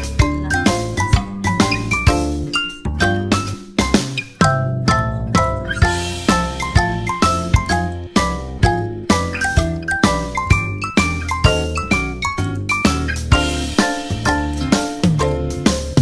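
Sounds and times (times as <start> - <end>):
tinkly bell melody over a beat: 0.0 - 16.0.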